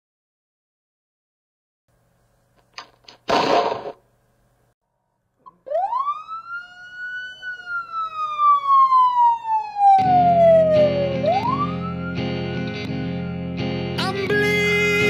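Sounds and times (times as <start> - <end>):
siren wailing: 5.5 - 13.4.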